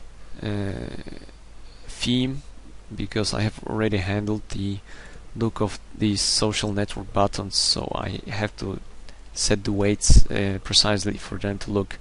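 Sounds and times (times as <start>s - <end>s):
steady low hum: 0.0s - 12.0s
man saying uh: 0.4s - 1.3s.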